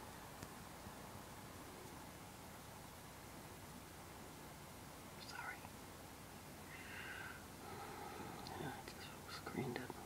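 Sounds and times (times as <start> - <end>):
room tone hiss: 0.0 - 10.0
person whispering: 5.2 - 5.7, 8.4 - 10.0.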